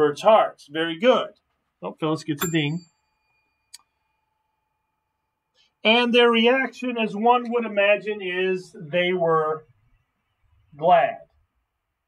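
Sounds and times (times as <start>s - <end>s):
desk call bell ding: 2.4s - 4.6s.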